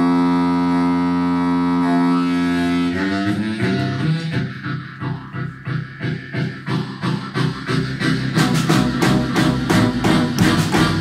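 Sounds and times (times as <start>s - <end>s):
amplified blues harmonica: 0.0s - 11.0s.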